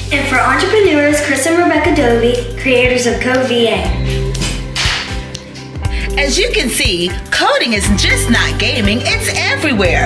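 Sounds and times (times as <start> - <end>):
background music sustained notes: 0.0 - 10.0.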